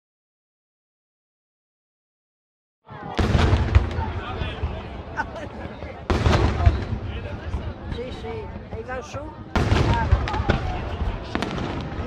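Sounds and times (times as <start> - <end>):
crowd voices: 2.8 - 12.0
low rumble after fireworks: 2.9 - 12.0
fireworks blasts: 3.1 - 12.0.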